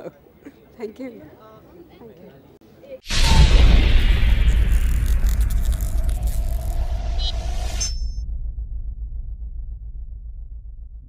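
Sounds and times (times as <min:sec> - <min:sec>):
rising swell: 0:03.1 - 0:10.8
pulsing low bass rumble: 0:03.1 - 0:11.0
whoosh hit: 0:03.1 - 0:11.0.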